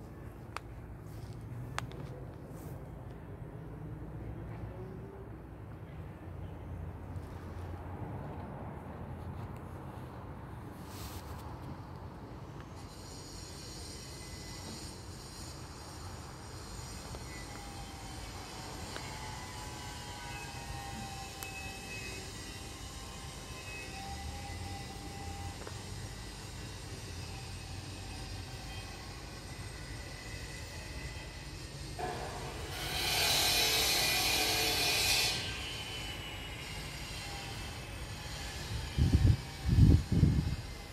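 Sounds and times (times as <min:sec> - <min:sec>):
faint whining tones: 0:11.7 - 0:40.9
loud hiss: 0:12.9 - 0:40.7.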